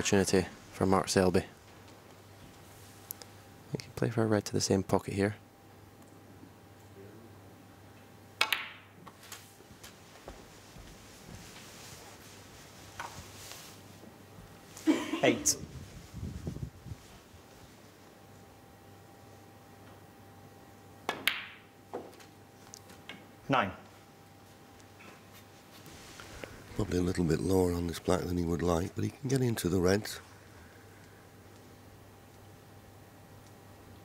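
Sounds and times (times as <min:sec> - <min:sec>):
cue tip clicking on ball: 0:08.4 - 0:08.8
snooker balls clicking: 0:08.4 - 0:09.2, 0:21.0 - 0:23.2
snooker balls clicking together: 0:08.4 - 0:09.2.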